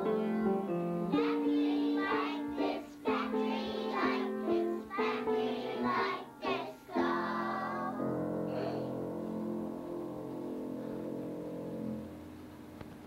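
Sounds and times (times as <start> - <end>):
children singing: 0.0 - 9.0.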